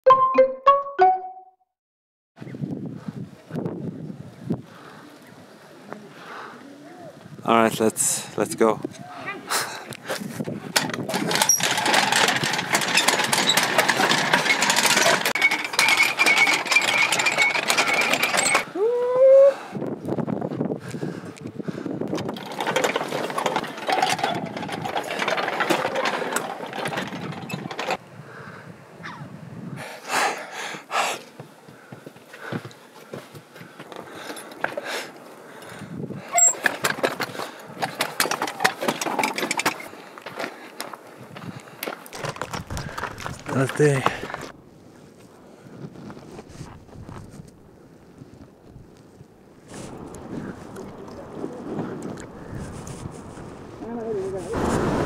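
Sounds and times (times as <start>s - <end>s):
prayer wheels rattling: 7.7s - 18.9s, 21.0s - 28.0s, 34.1s - 40.5s, 41.8s - 44.6s, 49.6s - 55.0s.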